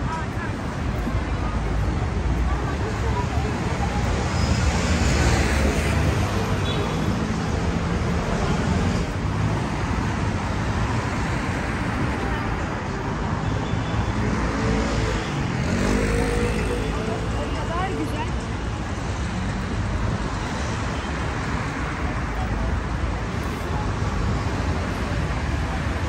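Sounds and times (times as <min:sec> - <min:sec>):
passers-by talking: 0:00.0 - 0:26.0
road traffic noise: 0:00.0 - 0:26.0.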